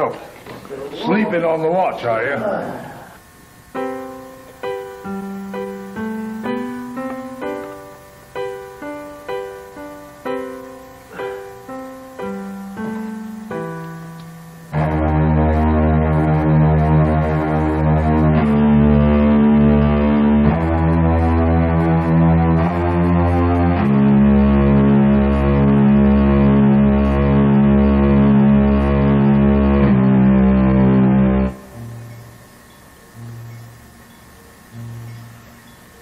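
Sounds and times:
loud sustained chords: 0:03.7 - 0:32.6, 0:33.2 - 0:35.6
soft keyboard notes: 0:03.7 - 0:36.0
pulsing bass: 0:14.0 - 0:32.4, 0:33.2 - 0:34.0.

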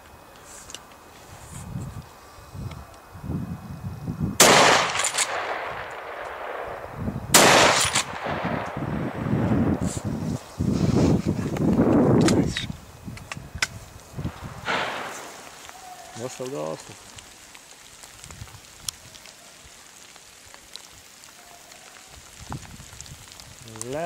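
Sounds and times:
rifle shots echoing: 0:04.4 - 0:09.5, 0:14.6 - 0:15.3.

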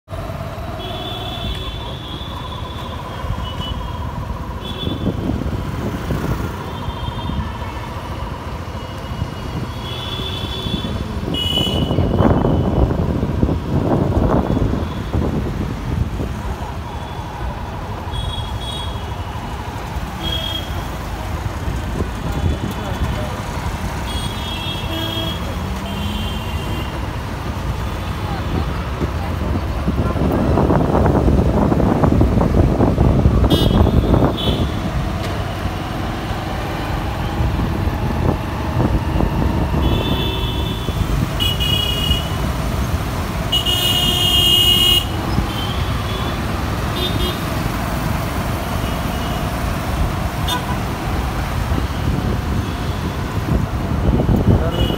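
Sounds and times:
busy street traffic: 0:00.0 - 0:54.9.

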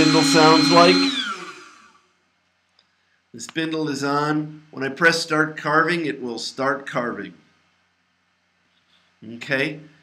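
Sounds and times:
router spindle whine winding down: 0:00.0 - 0:02.0.

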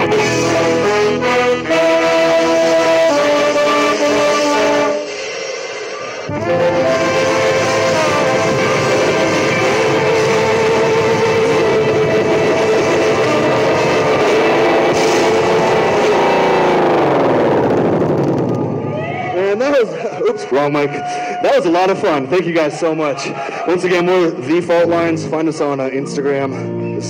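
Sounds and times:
guitar playing: 0:00.0 - 0:05.1, 0:06.3 - 0:18.8
ska band playing: 0:00.0 - 0:18.2
horns holding notes: 0:00.0 - 0:27.0.

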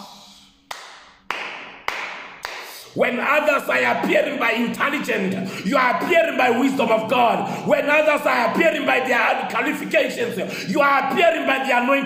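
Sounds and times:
sharp hand claps with echo: 0:00.7 - 0:03.0.

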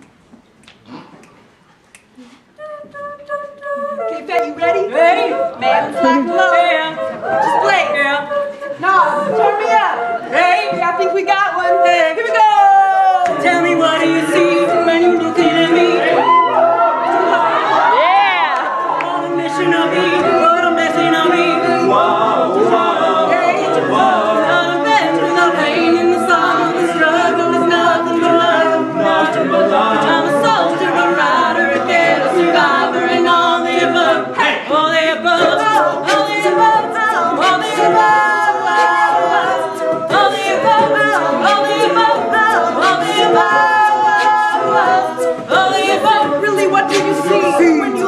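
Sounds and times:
vocal percussion beat: 0:00.8 - 0:48.0
a cappella group singing: 0:02.2 - 0:48.0.

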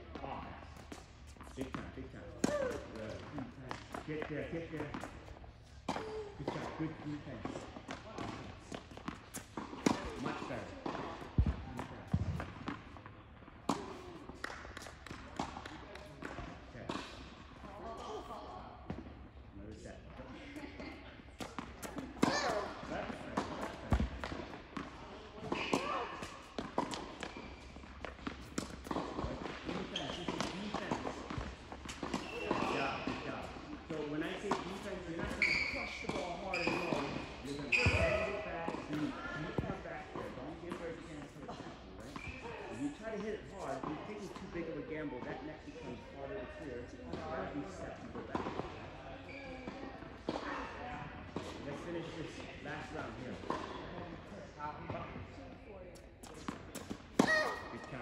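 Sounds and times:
tennis balls bouncing on hard court: 0:00.1 - 0:19.5, 0:20.1 - 0:42.5, 0:47.1 - 0:54.1, 0:54.9 - 0:58.0
tennis balls hit by rackets: 0:00.1 - 0:43.0, 0:47.1 - 0:49.0, 0:49.6 - 0:54.3, 0:54.9 - 0:58.0.

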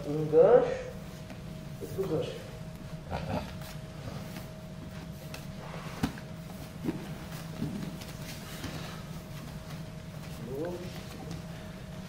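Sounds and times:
room hum: 0:00.0 - 0:12.0
fabric rustling on mat: 0:01.0 - 0:12.0.

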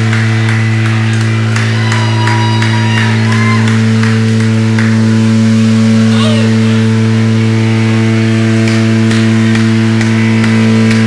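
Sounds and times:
guitar amplifier low drone: 0:00.0 - 0:11.0
amplifier crackles: 0:03.0 - 0:11.0.

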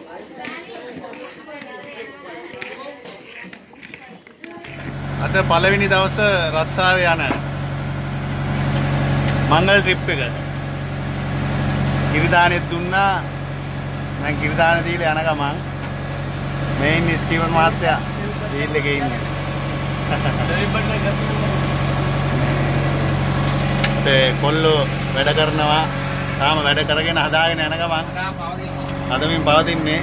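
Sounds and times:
boat engine droning: 0:04.6 - 0:30.0.

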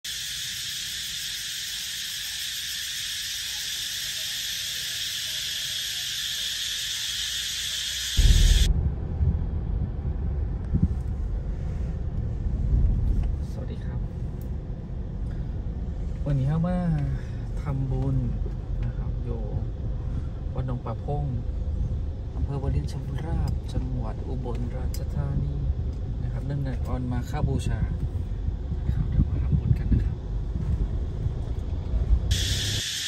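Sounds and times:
high-pitched insect drone: 0:00.0 - 0:08.7, 0:32.3 - 0:33.0
road and engine rumble in car: 0:08.2 - 0:32.8.

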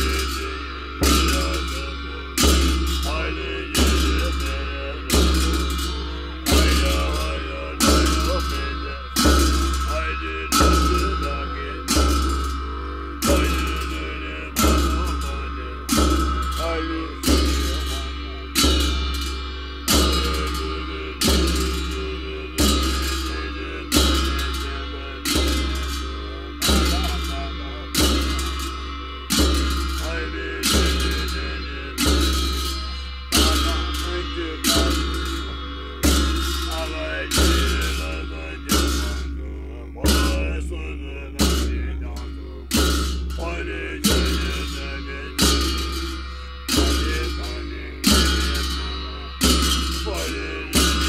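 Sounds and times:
cymbal clash ringing: 0:00.0 - 0:40.5, 0:41.4 - 0:51.0.

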